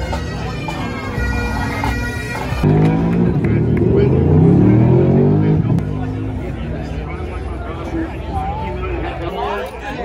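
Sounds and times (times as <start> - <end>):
crowd chatter: 0.0 - 10.0
race car engine revving: 2.6 - 7.6.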